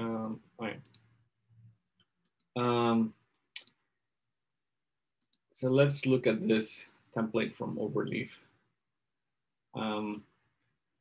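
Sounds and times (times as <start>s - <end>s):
computer mouse clicks: 0.8s - 1.1s, 2.2s - 2.6s, 3.3s - 3.8s, 5.2s - 5.5s
person saying um: 6.3s - 6.7s.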